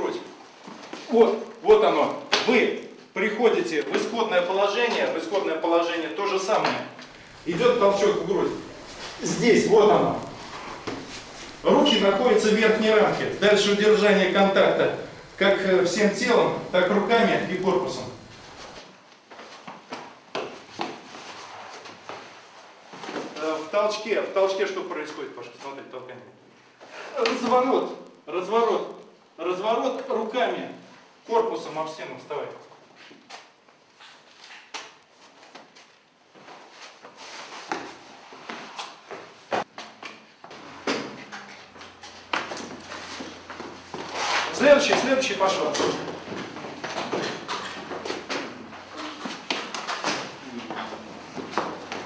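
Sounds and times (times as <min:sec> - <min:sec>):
clothing rustling against wall: 0:07.1 - 0:13.5
shuffling footsteps on steps: 0:07.1 - 0:13.5.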